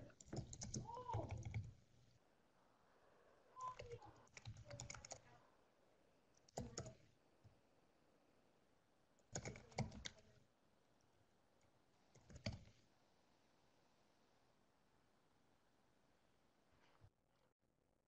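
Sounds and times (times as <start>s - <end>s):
faint keyboard typing: 0.0s - 2.2s, 3.6s - 5.4s, 6.3s - 7.6s, 9.2s - 12.9s.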